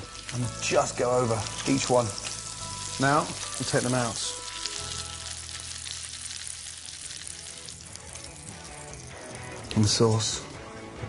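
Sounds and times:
fish sizzling in a frying pan: 0.0s - 10.5s
quiet background music: 0.0s - 11.0s.

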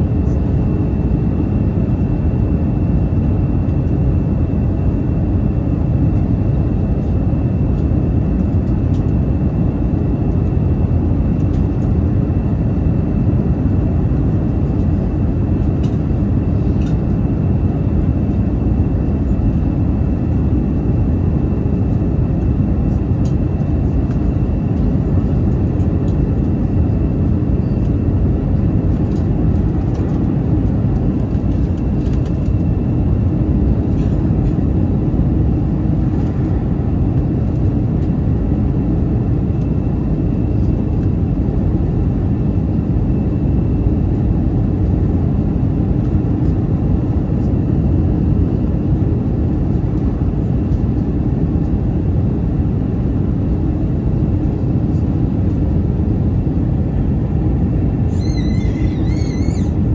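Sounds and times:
aircraft engines rumbling: 0.0s - 59.9s.

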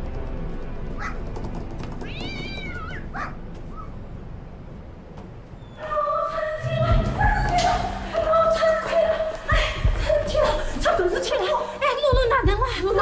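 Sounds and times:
faint background music: 0.0s - 13.0s
cat meowing: 2.0s - 3.9s.

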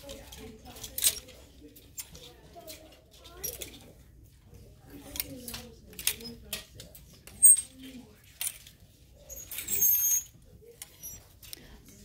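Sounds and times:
plastic hangers sliding on rail: 5.0s - 11.8s.

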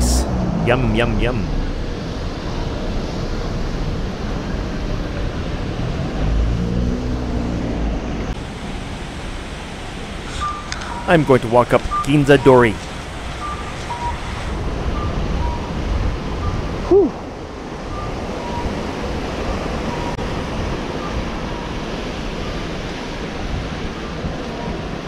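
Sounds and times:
faint two-tone beeps: 10.4s - 11.3s, 11.9s - 12.7s
wind buffeting microphone: 12.8s - 25.0s.

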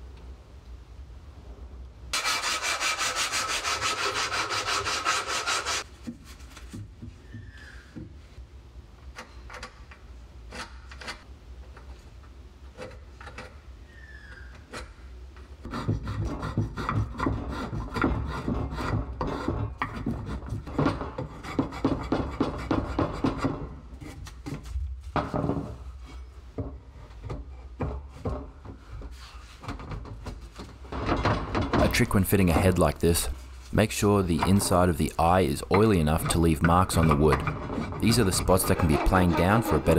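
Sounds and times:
spokeshave scraping wood: 2.2s - 5.9s, 31.8s - 39.9s.

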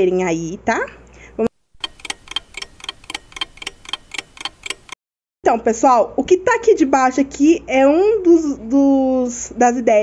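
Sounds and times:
ticking clock: 1.8s - 5.0s.

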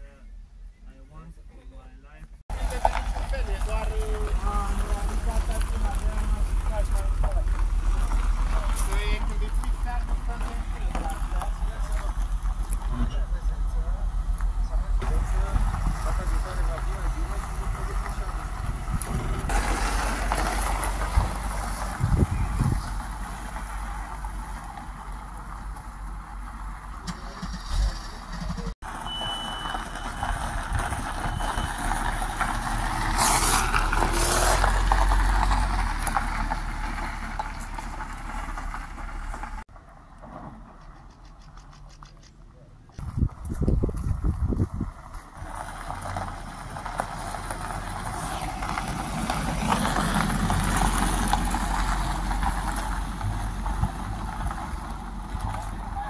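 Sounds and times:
car engine rumble: 0.0s - 56.0s
tyres on gravel: 1.6s - 56.0s.

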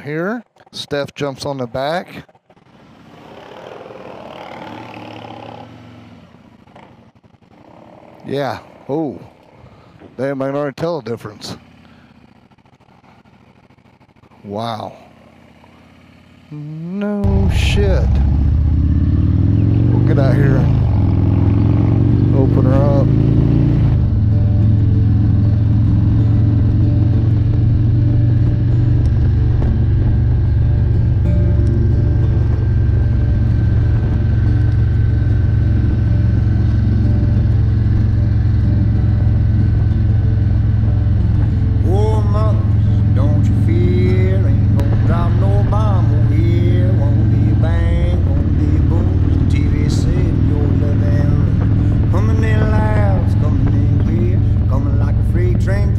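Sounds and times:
motorcycle engine running: 1.8s - 10.2s, 10.8s - 55.9s.

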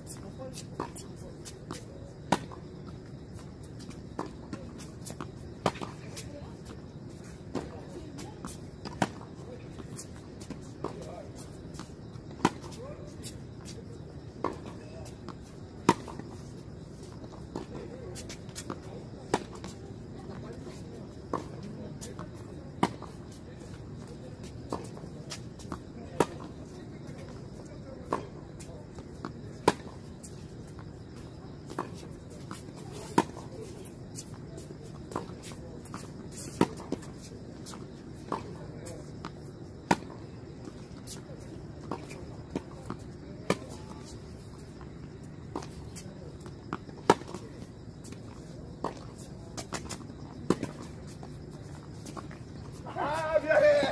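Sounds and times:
tennis ball bouncing: 39.9s - 40.2s, 46.7s - 47.4s.

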